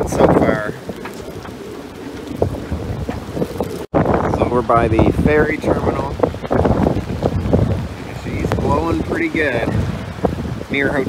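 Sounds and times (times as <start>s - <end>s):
storm wind buffeting microphone: 0.0s - 11.0s.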